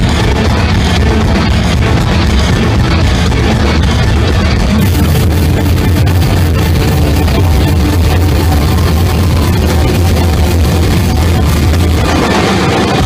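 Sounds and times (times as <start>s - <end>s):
live rock band playing: 0.0s - 13.0s
steady low drone: 0.0s - 13.0s.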